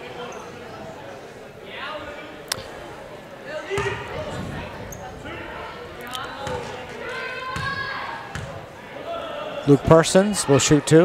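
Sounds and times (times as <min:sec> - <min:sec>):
crowd chatter: 0:00.0 - 0:11.0
faint voices: 0:00.0 - 0:11.0.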